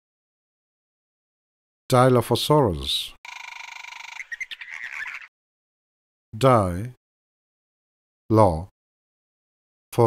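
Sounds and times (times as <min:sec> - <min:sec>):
dinosaur buzzing rattle call: 0:03.3 - 0:05.2.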